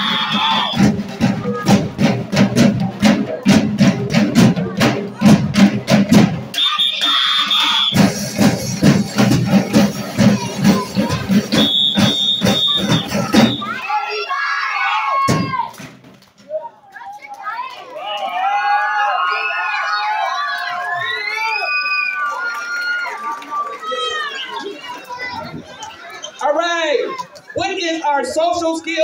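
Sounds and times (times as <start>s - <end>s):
drumline snare and bass drums: 0.0s - 14.0s, 15.1s - 16.2s
children talking and calling out: 0.0s - 15.8s, 16.4s - 18.1s, 22.4s - 29.0s.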